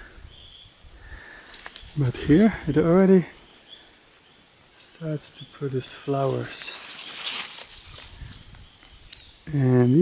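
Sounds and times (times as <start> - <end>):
leaves and branches rustling: 0.2 - 9.9.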